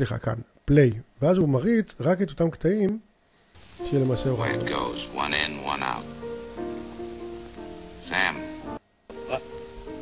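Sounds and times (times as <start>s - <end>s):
held music notes: 3.8s - 10.0s.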